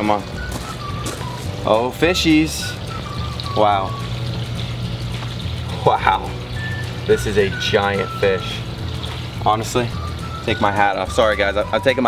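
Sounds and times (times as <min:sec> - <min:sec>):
faint background music: 0:00.0 - 0:12.0
running water: 0:00.0 - 0:12.0.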